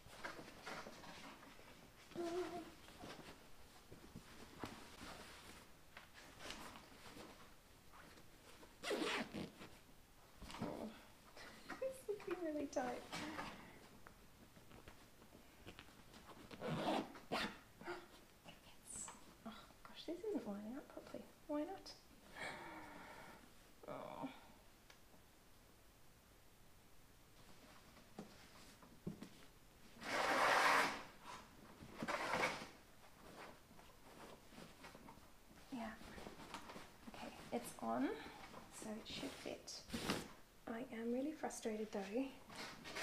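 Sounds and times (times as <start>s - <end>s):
fabric rustling: 0.0s - 18.4s, 27.3s - 40.5s
dress zip being pulled up: 8.8s - 9.6s, 16.5s - 17.6s, 30.0s - 31.4s, 32.0s - 32.7s.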